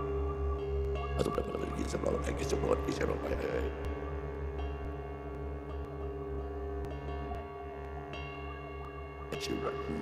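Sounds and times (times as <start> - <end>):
electronic ambient drone music: 0.0 - 10.0.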